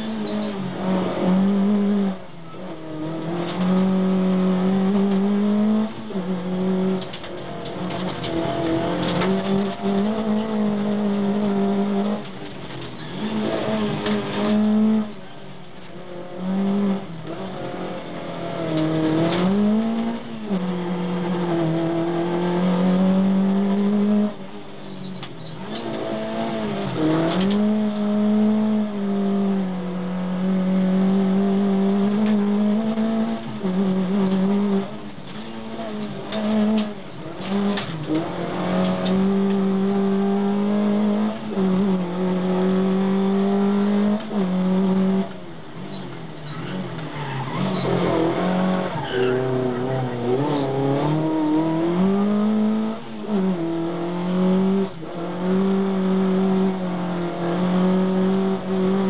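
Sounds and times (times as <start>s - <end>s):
race car engine from inside cabin: 0.0s - 59.0s.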